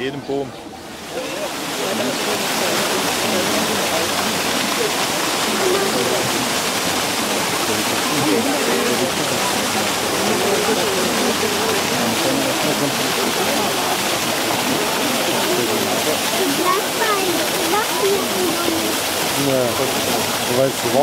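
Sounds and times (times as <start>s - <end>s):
faint murmuring voices: 0.0s - 21.0s
water rushing: 0.0s - 21.0s.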